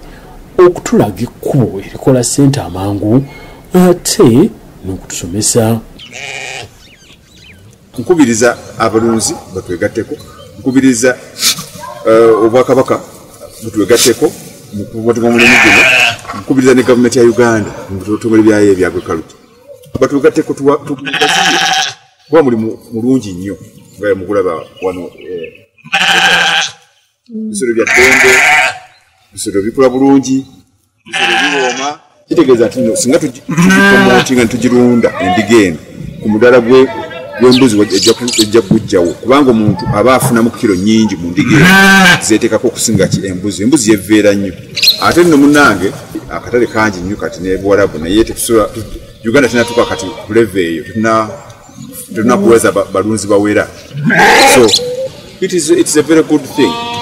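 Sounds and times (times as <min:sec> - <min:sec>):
man talking: 0:00.6 - 0:06.0, 0:07.9 - 0:21.7, 0:22.3 - 0:25.6, 0:27.4 - 0:28.6, 0:29.3 - 0:30.6, 0:31.2 - 0:56.8
sheep bleating: 0:06.0 - 0:06.8, 0:15.2 - 0:16.3, 0:20.9 - 0:22.0, 0:25.8 - 0:26.9, 0:27.7 - 0:28.9, 0:31.0 - 0:32.0, 0:33.5 - 0:34.4, 0:41.4 - 0:42.3, 0:49.4 - 0:50.4, 0:54.0 - 0:54.8, 0:56.5 - 0:57.0.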